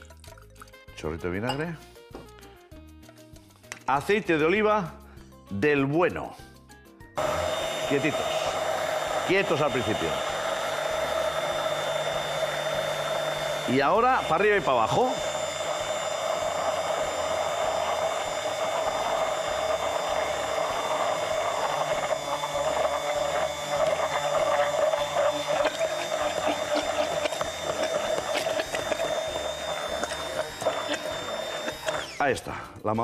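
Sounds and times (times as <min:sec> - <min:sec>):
immersion blender motor whine: 0:07.2 - 0:32.4.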